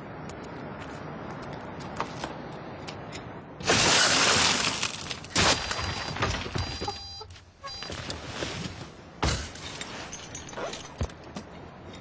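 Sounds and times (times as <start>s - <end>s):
breaking glass crackling: 3.6s - 6.8s
car window glass shattering: 3.6s - 6.8s.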